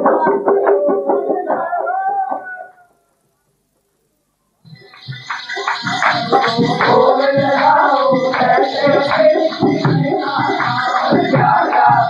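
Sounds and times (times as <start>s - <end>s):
group singing a chant: 0.0s - 2.7s, 5.2s - 12.0s
hand clapping: 4.8s - 12.0s.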